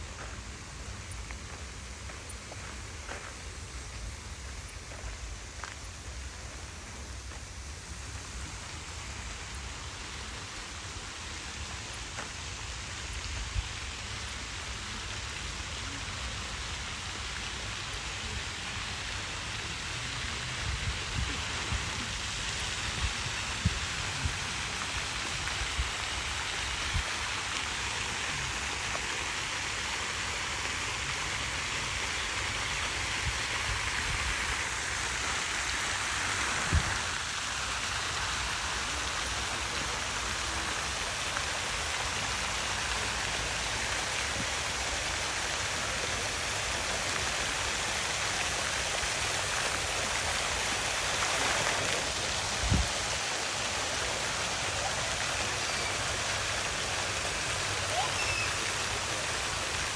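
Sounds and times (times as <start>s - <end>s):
fountain water splashing: 0.0s - 59.9s.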